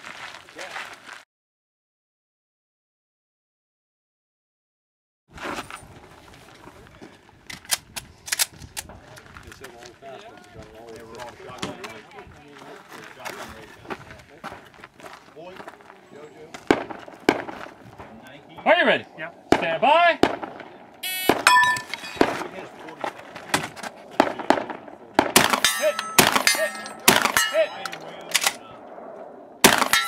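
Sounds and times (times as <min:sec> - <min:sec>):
people talking: 0:00.5 - 0:00.8, 0:08.9 - 0:14.6, 0:21.0 - 0:28.8
gunshots: 0:16.6 - 0:17.8, 0:19.5 - 0:22.6, 0:23.5 - 0:28.9, 0:29.6 - 0:30.0.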